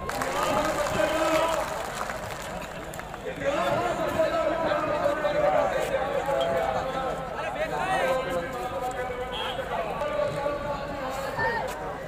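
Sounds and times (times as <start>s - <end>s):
outdoor crowd noise: 0.0s - 12.0s.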